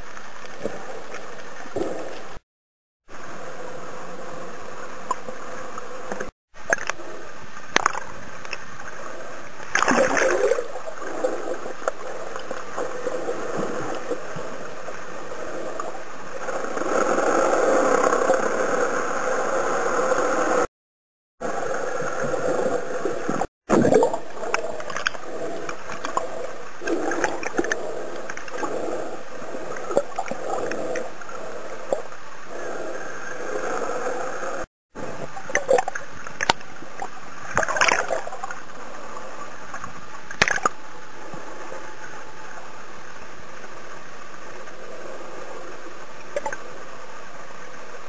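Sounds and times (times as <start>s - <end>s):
underwater rushing: 3.1s - 20.7s, 21.4s - 48.0s
bubbles gurgling and popping: 9.6s - 14.3s, 22.4s - 32.1s.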